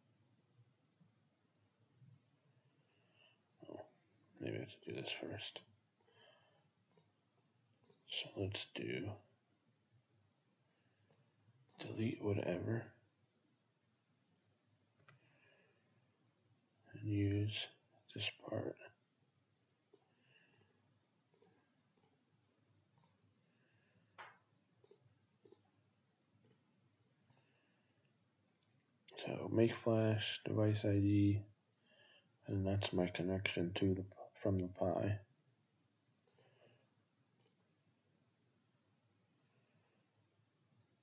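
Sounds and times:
computer mouse clicks: 0:06.9 - 0:07.2, 0:07.8 - 0:08.1, 0:19.9 - 0:22.2, 0:23.0 - 0:23.2, 0:24.2 - 0:25.7, 0:26.4 - 0:26.6, 0:27.3 - 0:27.5, 0:36.2 - 0:36.5, 0:37.4 - 0:37.6.

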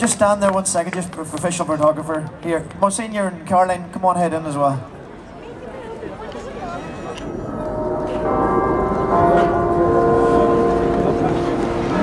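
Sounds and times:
crowd noise: 0:00.0 - 0:12.0
church bells ringing: 0:07.2 - 0:12.0.

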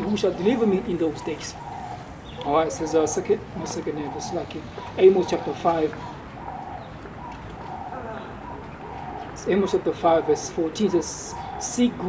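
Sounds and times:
pigeon cooing: 0:00.0 - 0:12.0.

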